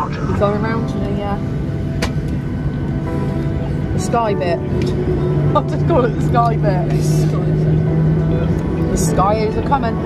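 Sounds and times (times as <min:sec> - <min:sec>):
jet engine hum and whine: 0:00.0 - 0:10.0.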